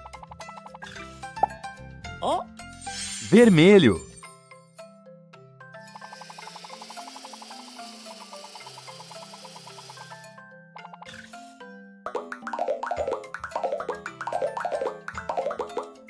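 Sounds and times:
cartoon background music: 0.0 - 16.0
hissing machine with rapid clicking: 5.9 - 10.2.

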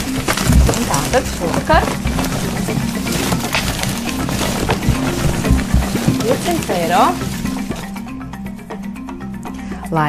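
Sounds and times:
paper tickets rustling: 0.0 - 8.0
background music: 0.0 - 10.0.

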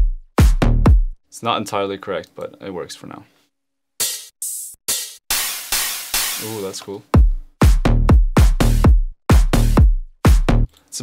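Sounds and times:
electronic hi-hat bursts: 4.0 - 10.4.

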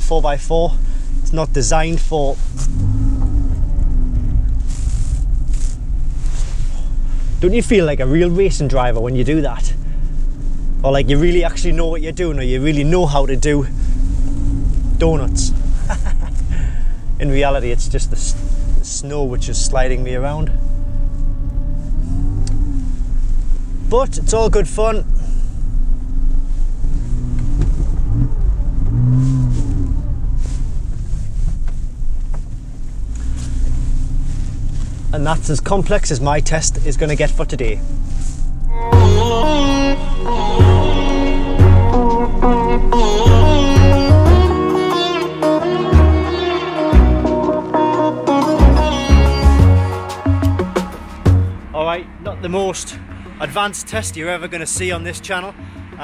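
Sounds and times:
car engine rumbling: 0.0 - 56.0.

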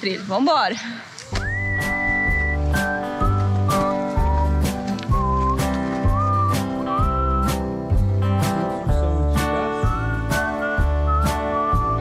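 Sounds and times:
whistled melody over a beat: 1.4 - 8.6, 9.4 - 12.0
bass line: 1.4 - 12.0.

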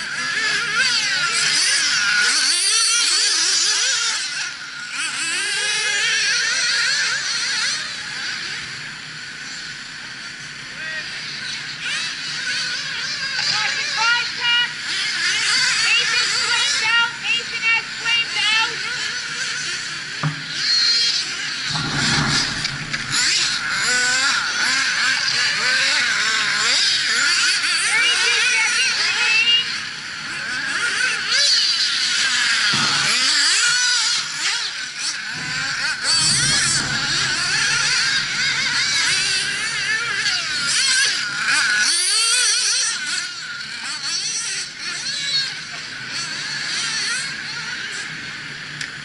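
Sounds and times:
rc car engines revving: 0.0 - 49.0.

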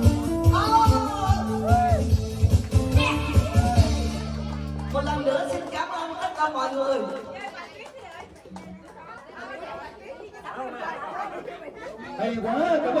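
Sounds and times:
party chatter: 3.0 - 13.0.

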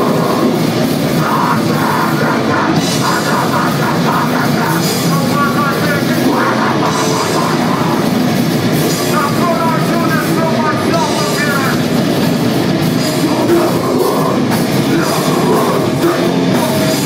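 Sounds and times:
distorted electric guitars: 0.0 - 17.0
drum kit: 0.0 - 17.0.

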